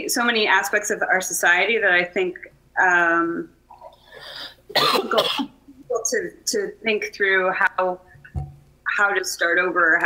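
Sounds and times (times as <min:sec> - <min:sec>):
person coughing: 0:04.7 - 0:05.5.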